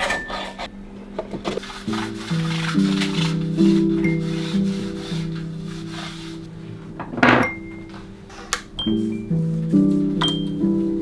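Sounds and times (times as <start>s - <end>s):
background music with low notes: 0.0s - 11.0s
light rubbing noise: 1.6s - 6.5s.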